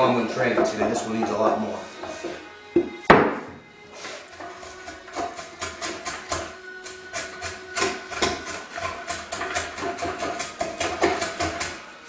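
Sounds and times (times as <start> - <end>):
hand tool scraping wood: 0.0 - 3.0, 3.9 - 11.8.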